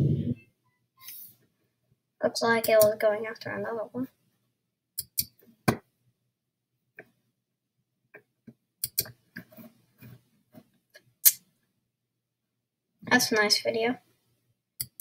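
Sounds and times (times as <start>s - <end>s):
computer mouse clicks: 5.0s - 5.4s, 8.8s - 9.5s, 14.8s - 15.0s.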